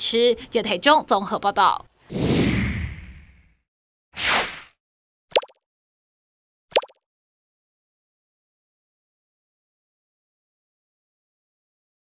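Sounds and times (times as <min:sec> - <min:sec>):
pop sound effects: 0:05.3 - 0:05.6, 0:06.7 - 0:07.0.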